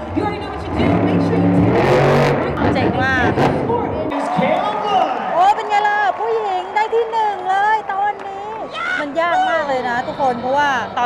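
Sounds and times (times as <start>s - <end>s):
monster truck engine running: 0.0s - 4.1s
crowd voices: 0.0s - 11.0s.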